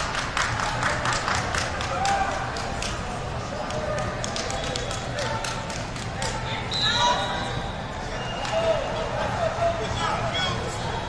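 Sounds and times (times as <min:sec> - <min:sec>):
scattered voices: 0:01.1 - 0:11.0.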